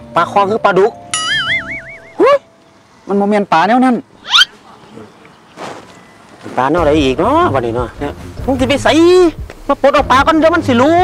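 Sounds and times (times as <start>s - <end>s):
cartoon wobbling tone: 1.2s - 2.4s
soft music bed: 4.5s - 11.0s.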